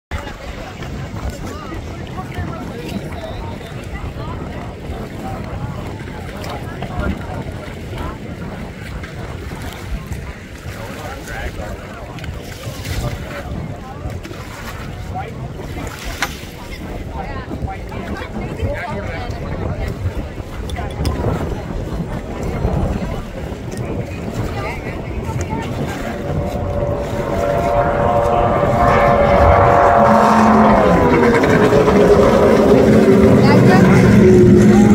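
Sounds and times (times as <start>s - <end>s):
crowd chatter: 0.1s - 34.9s
racing boat engines: 0.1s - 34.9s
wind on microphone: 0.1s - 34.9s.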